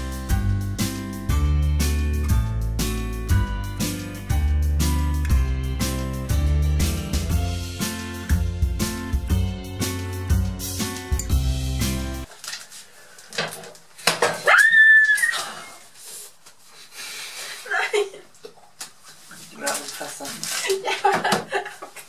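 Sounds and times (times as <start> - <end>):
loud high-pitched yelp of pain: 14.4 - 15.8.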